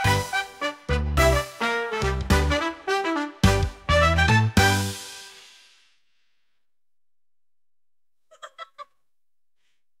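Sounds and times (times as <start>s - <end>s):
chicken clucking: 8.3s - 9.0s.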